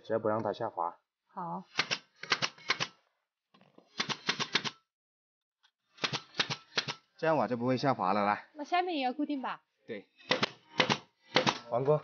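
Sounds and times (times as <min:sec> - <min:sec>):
nail gun firing into wood: 0:01.7 - 0:02.9, 0:06.0 - 0:07.0, 0:10.2 - 0:11.7.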